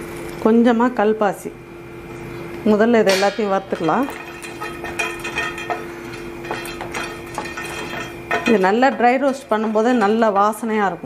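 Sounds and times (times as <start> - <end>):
steady low hum: 0.0 - 11.0
utensil scraping a pan: 3.6 - 10.8.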